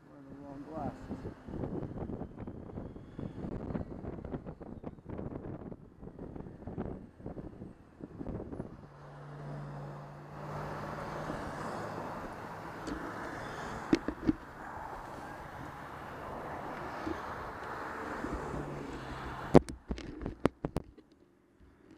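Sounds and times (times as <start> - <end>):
motorcycle engine drone: 0.0 - 20.7
road noise: 0.0 - 21.9
wind buffeting microphone: 0.7 - 8.9.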